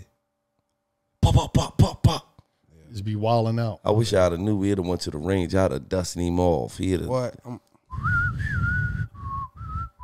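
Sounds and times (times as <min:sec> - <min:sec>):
man whistling a tune: 0:07.9 - 0:10.0.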